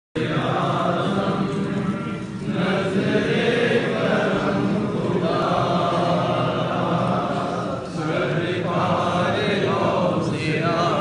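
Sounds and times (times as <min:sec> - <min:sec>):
voices chanting together: 0:00.2 - 0:11.0.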